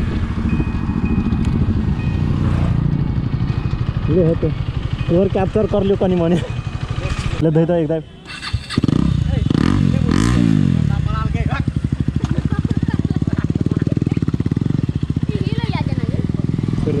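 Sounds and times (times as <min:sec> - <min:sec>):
engine revving: 0:00.0 - 0:17.0
motorcycle engine idling: 0:00.0 - 0:17.0.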